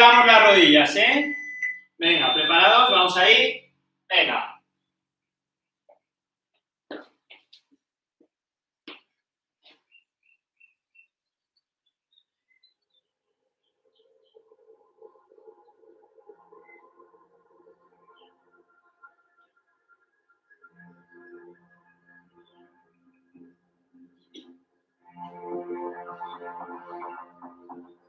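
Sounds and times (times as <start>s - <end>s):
faint high chirps: 0.0s - 3.4s
faint background music: 0.0s - 4.6s, 13.9s - 28.0s.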